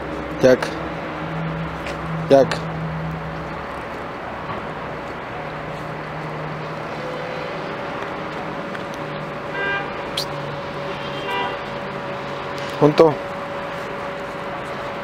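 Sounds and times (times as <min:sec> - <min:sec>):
road traffic hum: 0:00.0 - 0:15.0.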